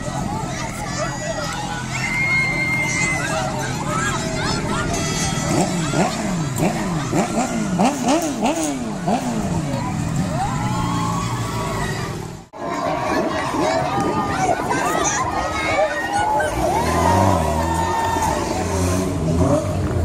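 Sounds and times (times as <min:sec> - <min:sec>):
crowd voices and shouts: 0:00.0 - 0:20.0.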